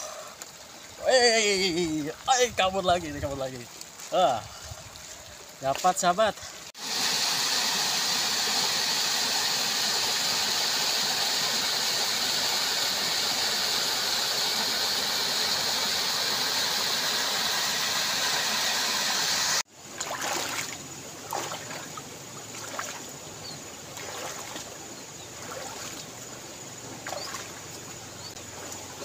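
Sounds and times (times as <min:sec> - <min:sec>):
running stream water: 0:00.0 - 0:29.0
waterfall rushing over rocks: 0:06.2 - 0:19.6.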